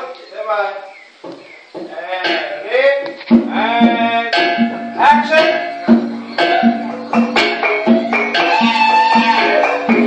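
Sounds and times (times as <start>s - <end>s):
song with sliding sung melody: 1.8s - 10.0s
repeating low note: 3.3s - 9.3s.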